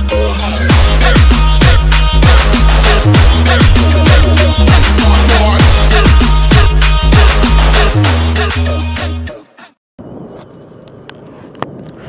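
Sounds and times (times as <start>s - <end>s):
wind on microphone: 10.0s - 12.0s.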